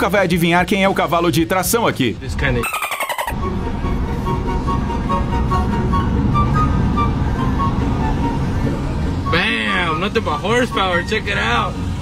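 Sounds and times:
faint background music: 0:00.0 - 0:12.0
vehicle road and wind noise: 0:00.0 - 0:12.0.

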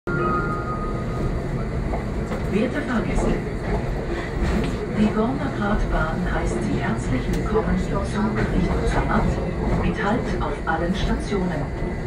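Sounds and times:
train running low rumble: 0:00.1 - 0:12.0.

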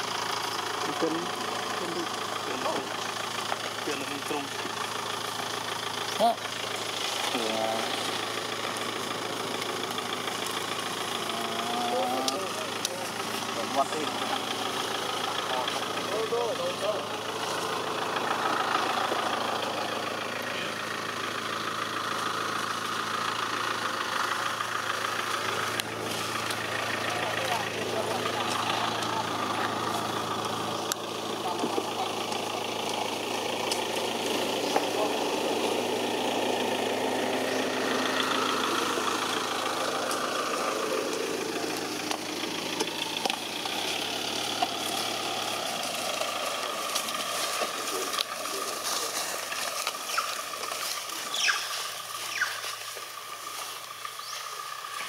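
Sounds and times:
engine idling: 0:00.0 - 0:55.0
indistinct voices: 0:00.0 - 0:55.0.

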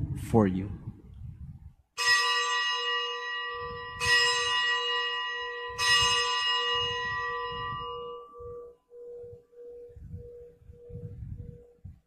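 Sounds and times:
consecration bell ringing: 0:02.0 - 0:11.2.

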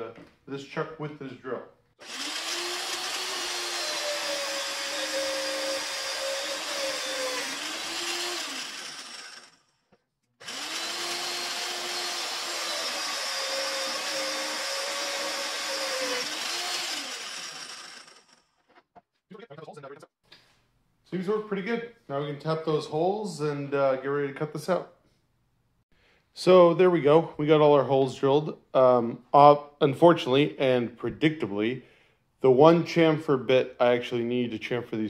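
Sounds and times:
drill cutting through steel: 0:02.0 - 0:09.8, 0:10.4 - 0:18.7.

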